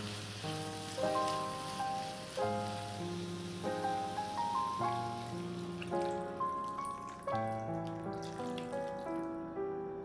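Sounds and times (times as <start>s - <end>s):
beer splashing into frying pan: 0.0s - 9.3s
background music: 0.0s - 10.0s.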